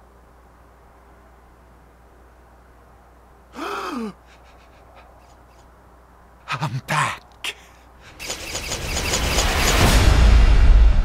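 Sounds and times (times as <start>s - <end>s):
fast regular ticking: 8.1s - 10.0s.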